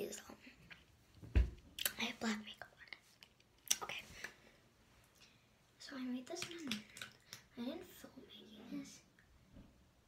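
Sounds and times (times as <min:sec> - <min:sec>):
girl whispering: 0:07.6 - 0:09.1.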